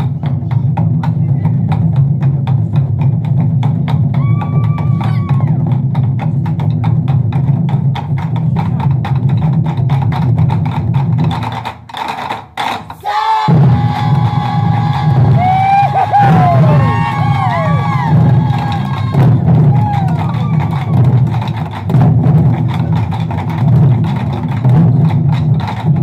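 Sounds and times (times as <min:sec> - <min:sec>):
taiko drums: 0:00.0 - 0:26.0.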